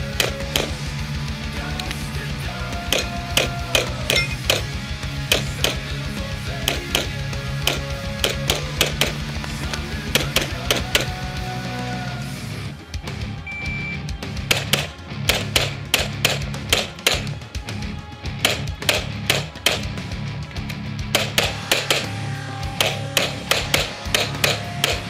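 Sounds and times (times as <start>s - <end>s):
rock music with electric guitar: 0.0s - 25.0s
electronic timer beep: 4.1s - 4.5s, 13.5s - 14.1s
rapid pistol shots: 6.6s - 11.2s, 14.4s - 17.3s, 18.4s - 19.9s, 21.1s - 22.1s.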